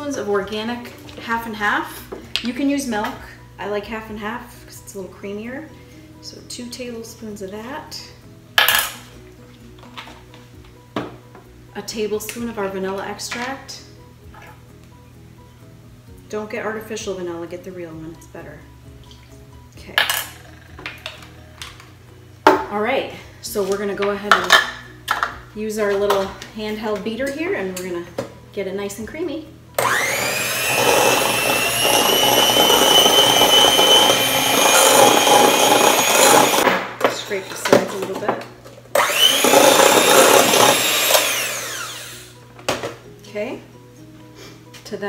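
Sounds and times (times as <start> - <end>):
faint background music: 0.0 - 45.0
electric hand mixer whining: 29.8 - 36.6, 39.0 - 42.4.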